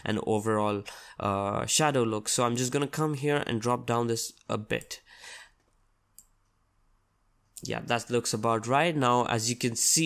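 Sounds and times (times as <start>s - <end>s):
soft breath: 5.0s - 5.6s.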